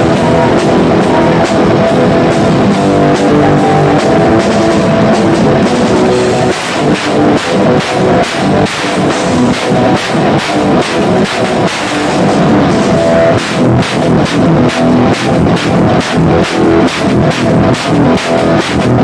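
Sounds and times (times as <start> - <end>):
punk rock band playing: 0.0 - 19.0.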